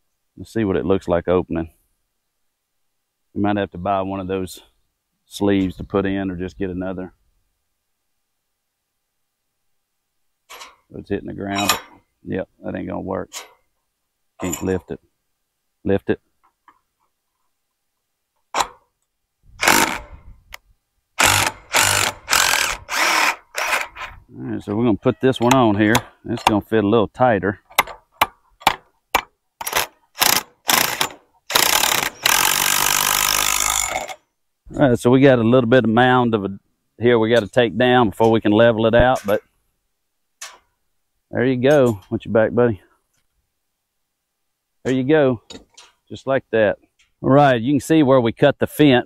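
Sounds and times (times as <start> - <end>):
man speaking: 0.4 - 1.7, 3.4 - 4.7, 5.3 - 7.2, 10.9 - 13.3, 14.4 - 15.0, 15.8 - 16.2, 24.3 - 27.7, 34.7 - 39.4, 41.3 - 42.9, 44.8 - 45.5, 46.1 - 49.0
impact driver tightening bolt: 19.6 - 20.1, 21.2 - 24.1, 29.6 - 34.2.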